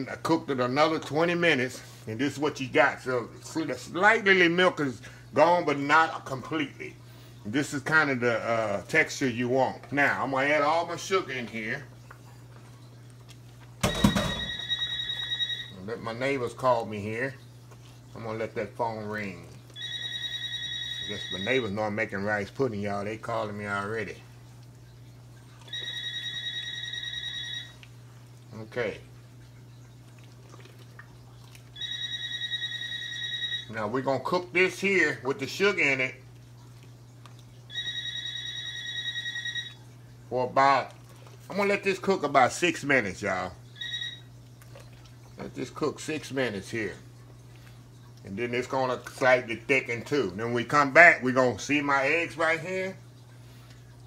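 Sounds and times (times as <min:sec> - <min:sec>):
telephone ringing: 0:13.8 - 0:16.2, 0:19.8 - 0:21.9, 0:25.7 - 0:27.8, 0:31.8 - 0:34.1, 0:37.7 - 0:39.9, 0:43.8 - 0:44.4
man talking: 0:21.1 - 0:24.2, 0:28.5 - 0:29.1, 0:33.7 - 0:36.2, 0:45.4 - 0:47.0, 0:48.2 - 0:53.0.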